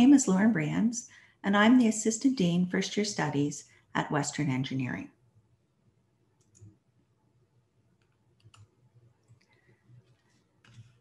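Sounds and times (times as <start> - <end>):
computer mouse clicks: 6.4 - 6.8, 8.0 - 11.0.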